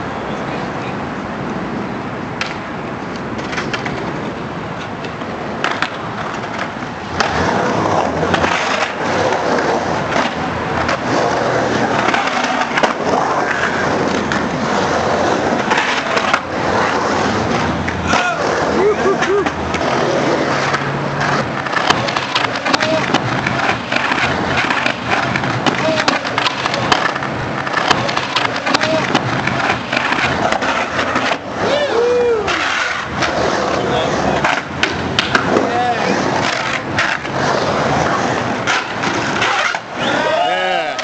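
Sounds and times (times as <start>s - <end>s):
skateboard wheels rolling on concrete: 0.0s - 41.0s
skateboard clacks: 0.5s - 41.0s
sharp clacks: 34.4s - 35.6s.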